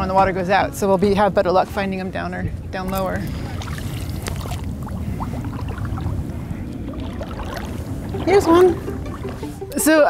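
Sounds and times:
water trickling and splashing: 2.7 - 10.0.

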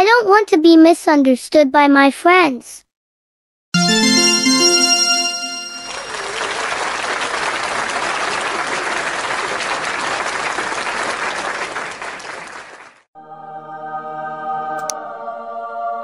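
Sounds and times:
musical chord: 3.8 - 6.6
applause: 3.8 - 13.1.

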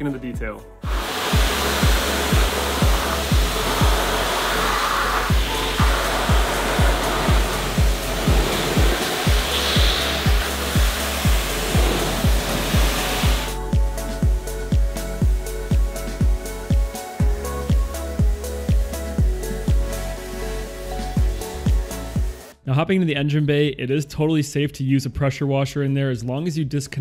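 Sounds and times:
background music with beat: 0.0 - 22.6
pressure washer spraying: 0.8 - 13.6.

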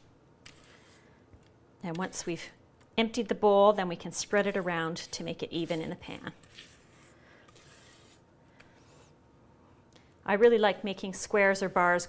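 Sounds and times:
spatula scraping steel bowl: 4.1 - 8.2, 11.2 - 12.0.

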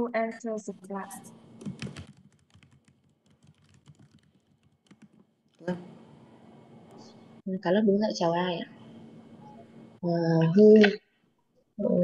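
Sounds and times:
computer keyboard typing: 1.6 - 5.7.

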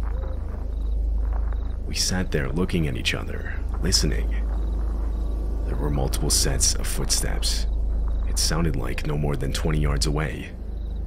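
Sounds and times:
crickets chirping: 0.0 - 11.0
steady low rumble: 0.0 - 11.0.

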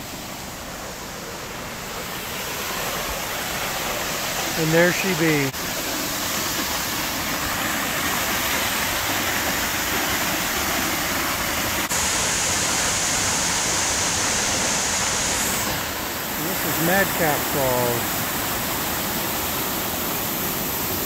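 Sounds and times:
waterfall rushing: 0.0 - 21.0.

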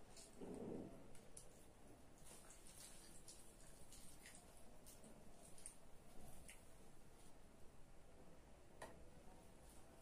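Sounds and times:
faint soft clicks and crackles: 0.0 - 7.3.

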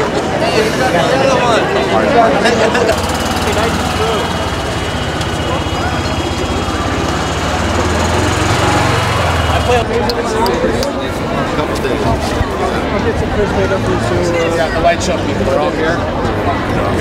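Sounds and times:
people talking: 0.0 - 17.0
pulsing engine rumble: 2.8 - 11.3.

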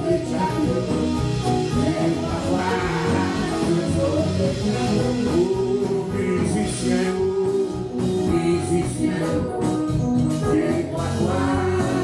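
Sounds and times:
worship singing with instruments: 0.0 - 12.0.

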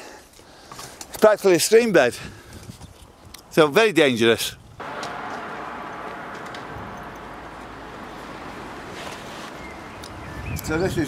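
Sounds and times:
light wind: 0.1 - 11.0
distant traffic: 4.8 - 10.4.

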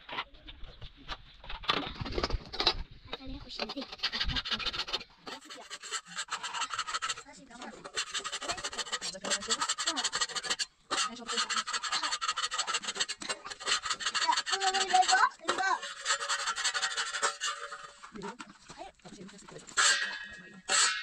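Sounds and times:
metal knife scraping griddle: 3.5 - 21.0.

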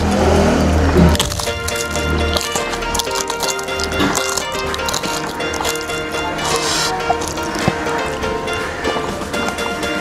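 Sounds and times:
background music with steady beat: 0.0 - 10.0
fried crisp crackling when crushed: 1.0 - 9.2.

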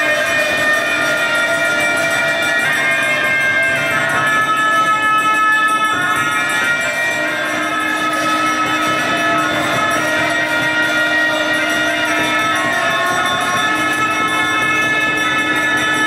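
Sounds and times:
conch shell trumpet: 0.0 - 16.0
oboes holding reedy notes: 0.0 - 16.0.

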